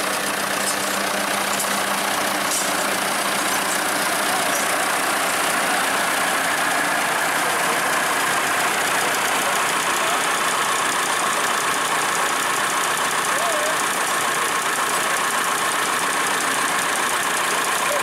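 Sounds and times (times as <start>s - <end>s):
tractor engine idling: 0.0s - 18.0s.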